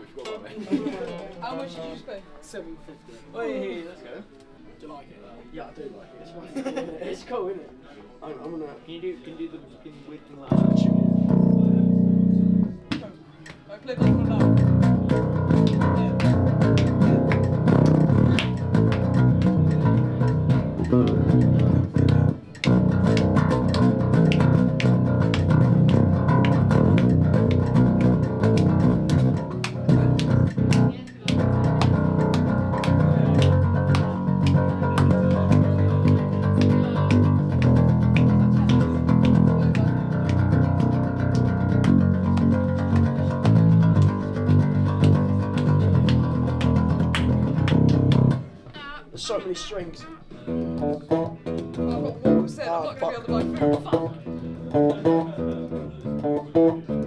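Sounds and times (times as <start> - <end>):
electric bass playing low notes: 10.5 - 12.9, 14.0 - 48.5, 50.5 - 52.6, 53.3 - 57.0.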